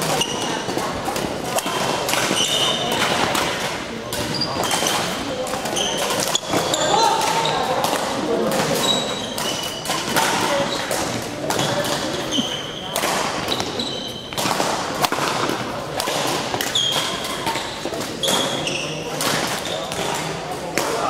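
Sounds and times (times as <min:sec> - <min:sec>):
court shoes squeaking: 0:00.0 - 0:21.0
hall full of voices: 0:00.0 - 0:21.0
racquet striking shuttlecock: 0:00.0 - 0:21.0.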